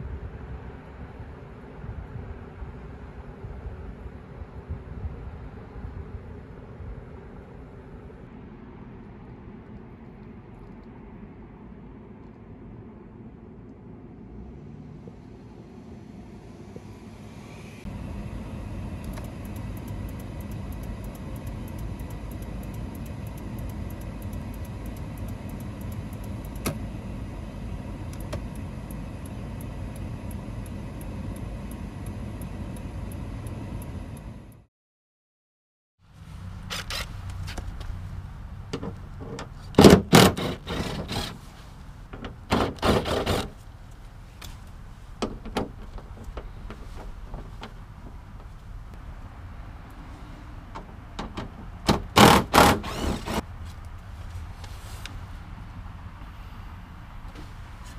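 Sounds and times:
car engine idling: 17.9 - 34.6, 40.6 - 51.9
rapid turn signal clicking: 19.0 - 26.8.

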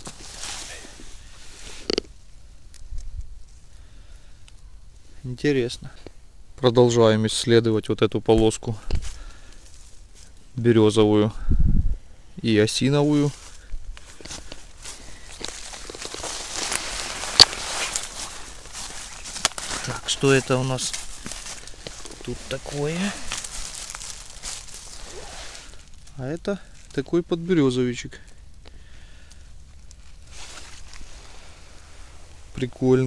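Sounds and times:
footsteps through dry leaves: 0.0 - 1.6, 13.2 - 26.9, 30.0 - 32.6
twig cracking: 1.7 - 3.6, 13.9 - 27.0.

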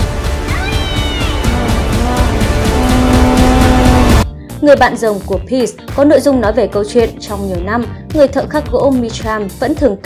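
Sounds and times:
film soundtrack music: 0.0 - 9.6.

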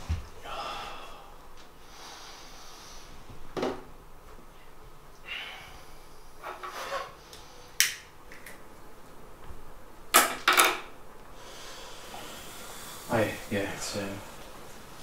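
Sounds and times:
man sniffing and exhaling: 11.4 - 13.1.

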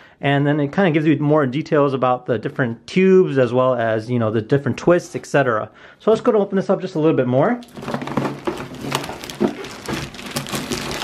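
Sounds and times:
cardboard and plastic rustling: 7.6 - 11.0.

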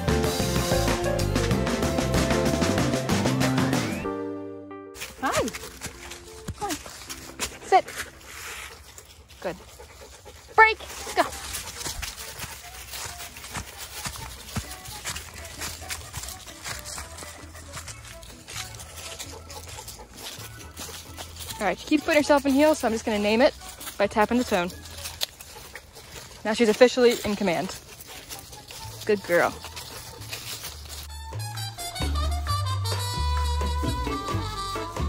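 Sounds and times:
dogs running through dry leaves: 5.0 - 32.2.

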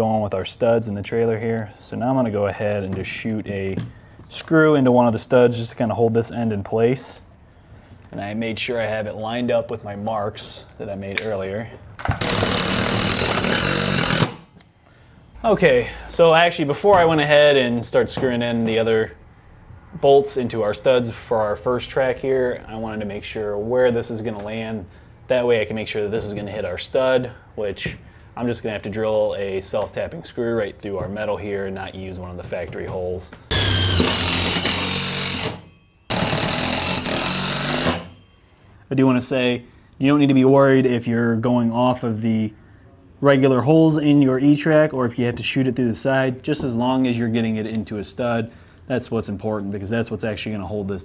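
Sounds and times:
cordless driver whining: 12.2 - 14.7, 33.5 - 38.2.

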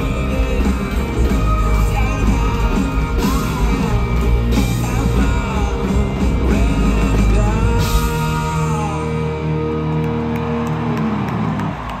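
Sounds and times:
electric guitars holding a chord: 0.0 - 12.0.

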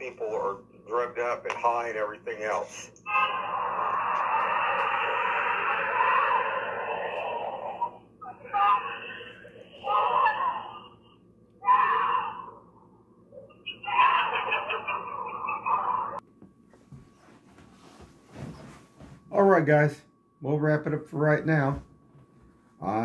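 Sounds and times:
screaming through phone speaker: 3.1 - 9.2, 9.8 - 10.9, 11.6 - 12.6, 13.9 - 14.6.

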